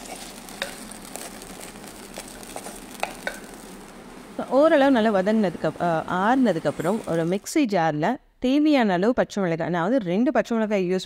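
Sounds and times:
pan sizzling: 0.0s - 7.6s.

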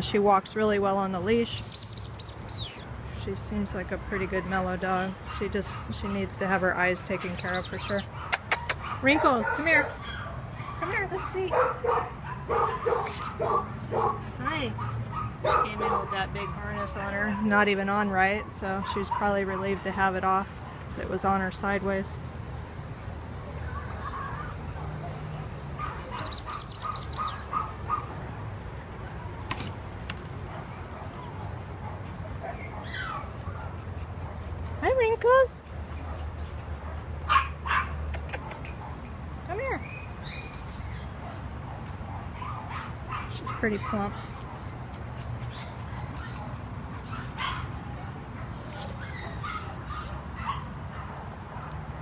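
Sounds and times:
outdoor background noise: 0.0s - 52.0s
small bird twittering: 1.5s - 2.9s, 7.4s - 8.1s, 26.1s - 27.5s, 39.8s - 41.1s.

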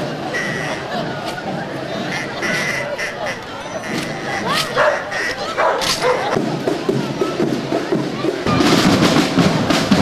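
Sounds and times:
street crowd chatter: 0.0s - 10.0s
dog barking: 4.7s - 6.4s.

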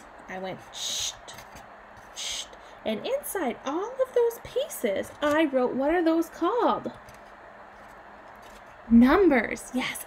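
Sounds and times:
room tone hiss: 0.0s - 10.0s
woman speaking: 0.2s - 1.4s, 2.2s - 7.0s, 8.9s - 10.0s.

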